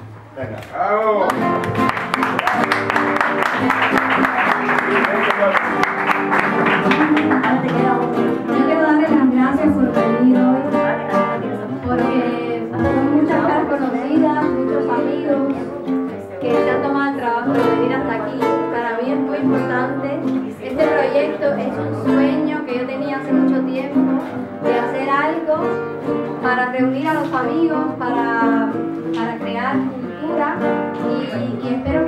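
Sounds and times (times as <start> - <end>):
acoustic guitar accompaniment: 0.0 - 32.0
applause: 1.2 - 8.5
woman singing: 6.9 - 32.0.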